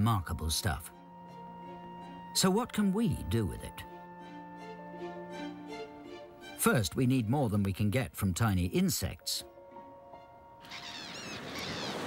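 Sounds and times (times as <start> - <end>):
held musical tone: 0.6 - 7.4, 9.2 - 11.4
high bird calls: 10.6 - 12.0.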